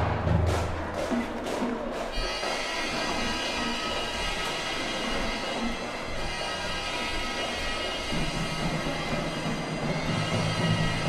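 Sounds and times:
wind band sustained chord: 0.0s - 11.0s.

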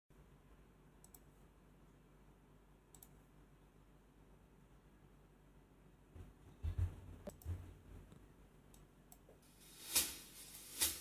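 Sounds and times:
low room hum: 0.1s - 11.0s.

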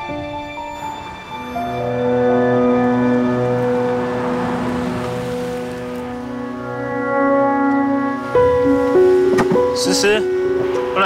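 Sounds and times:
soft background music: 0.0s - 11.0s
tyres hissing on wet road: 0.7s - 11.0s.

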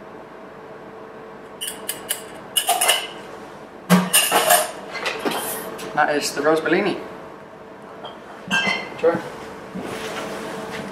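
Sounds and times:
glass clinking on bar: 8.0s - 8.9s.

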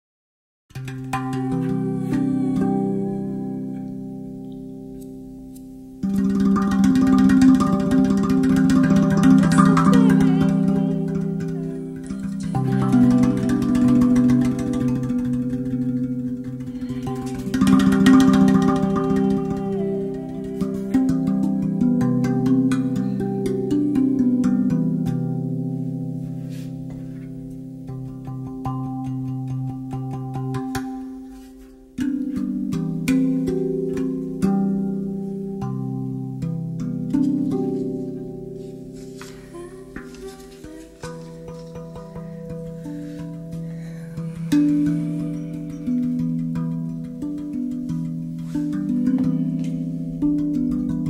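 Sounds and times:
steel tongue drum notes: 0.7s - 51.0s.

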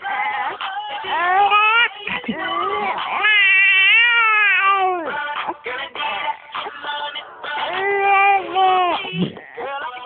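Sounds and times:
baby squealing: 0.1s - 5.1s, 7.7s - 9.6s.

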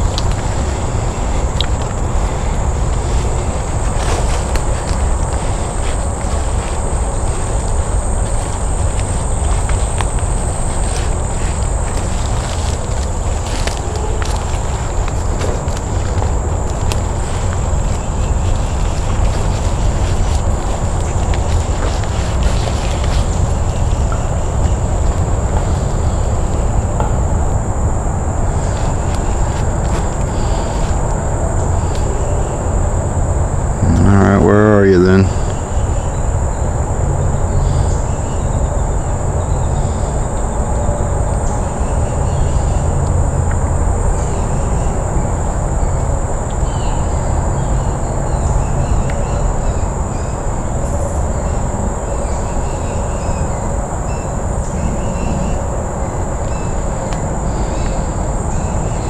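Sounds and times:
insect chorus drone: 0.0s - 59.0s
short wavering voice: 33.8s - 35.4s.

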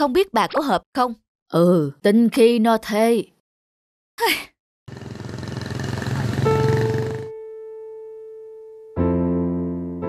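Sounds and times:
cartoon scooter pulling away: 4.9s - 7.4s.

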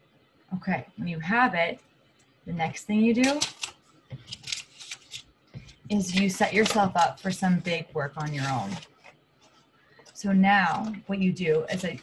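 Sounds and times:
paper rustling: 3.3s - 12.0s.

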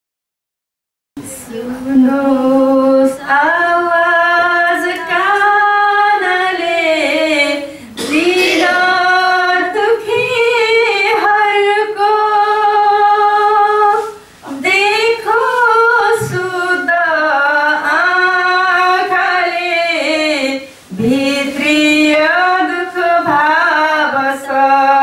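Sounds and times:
woman singing into a microphone: 1.2s - 25.0s.

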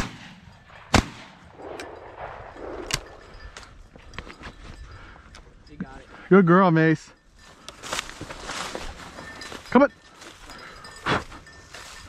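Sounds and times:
footsteps through dry grass: 7.3s - 12.0s.

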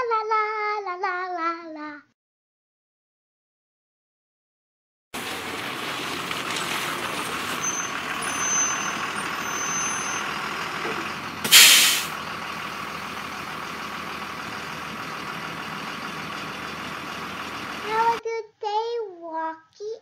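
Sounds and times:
air-brake hiss: 5.2s - 12.2s
bus engine running: 5.2s - 18.2s.

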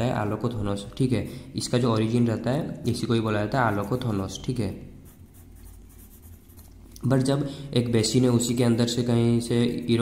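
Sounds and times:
pencil scratching on paper: 3.5s - 6.8s.

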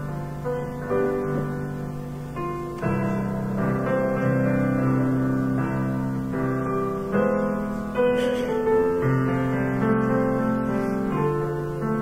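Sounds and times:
slow keyboard chords: 0.0s - 12.0s.

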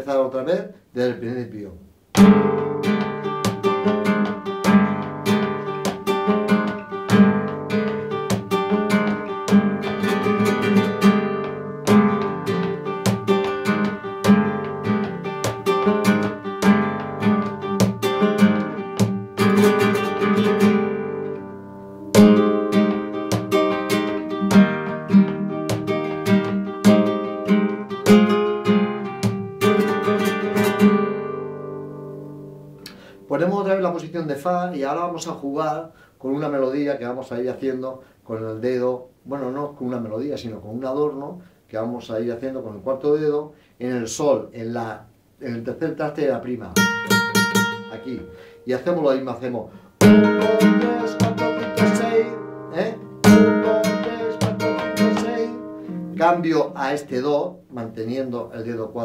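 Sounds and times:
flamenco guitar strummed chords: 2.1s - 34.0s, 46.4s - 59.0s.

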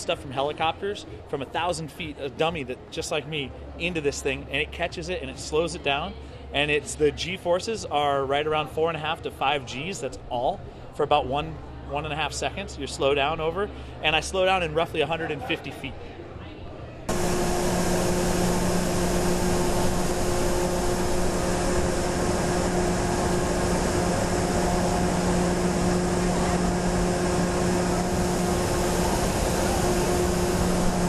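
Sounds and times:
constant low hum: 17.0s - 31.0s.

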